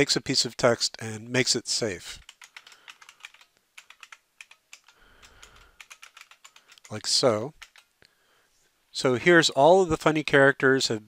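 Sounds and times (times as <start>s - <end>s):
typing on computer keyboard: 2.2s - 7.9s.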